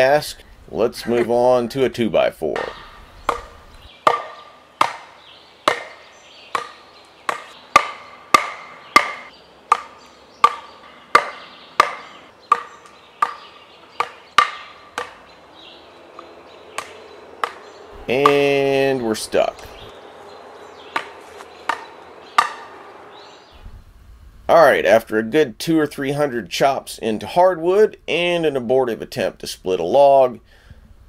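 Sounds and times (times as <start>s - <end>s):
wood striking a knife spine: 2.6s - 15.2s, 16.2s - 18.8s, 20.9s - 22.8s.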